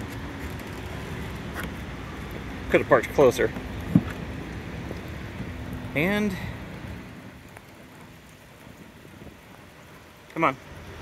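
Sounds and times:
light rain patter: 0.0 - 11.0
outdoor background noise: 0.0 - 11.0.

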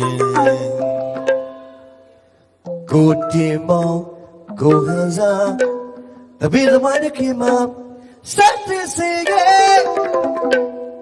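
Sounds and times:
musical accompaniment: 0.0 - 11.0.

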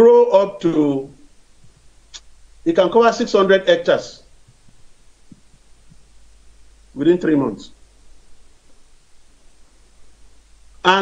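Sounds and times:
steady low hum: 0.0 - 11.0
soft low thumps: 1.3 - 2.7, 4.3 - 6.9.

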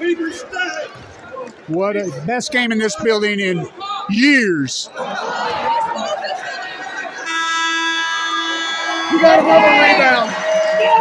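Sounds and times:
crowd chatter: 0.0 - 11.0
steady horn blast: 7.2 - 10.7.

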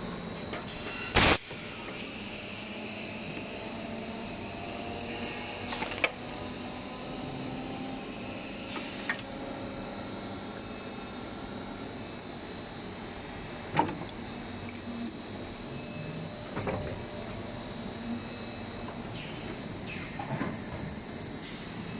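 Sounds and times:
machine mechanical hum: 0.0 - 21.9.

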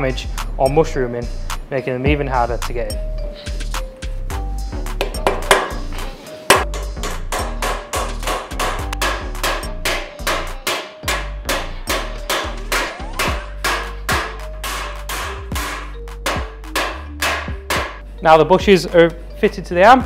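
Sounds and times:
background music with bass: 0.0 - 20.0
hammer blows on steel: 6.5 - 18.0.

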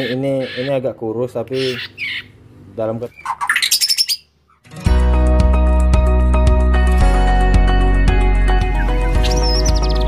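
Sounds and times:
bird squawk: 0.0 - 0.8, 1.5 - 2.4, 3.1 - 4.7
intro music with beat: 4.8 - 10.0.

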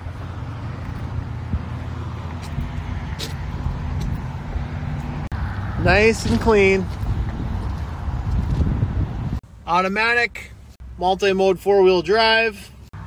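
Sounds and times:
vehicle engine idling: 0.0 - 9.6.

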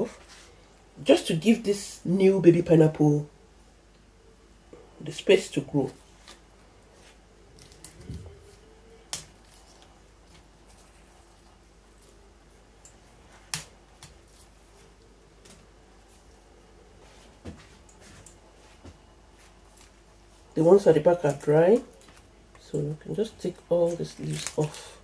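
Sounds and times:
sharp leaf snaps: 9.0 - 9.9, 13.5 - 14.3, 23.8 - 25.0
dry leaves crackling and rustling: 23.2 - 25.0.

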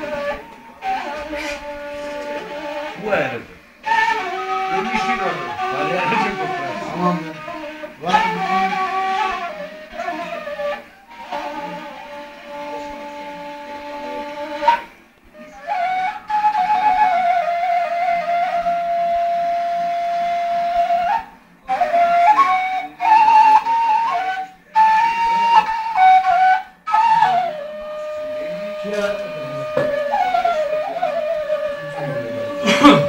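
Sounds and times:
wooden flute melody: 0.0 - 33.0.

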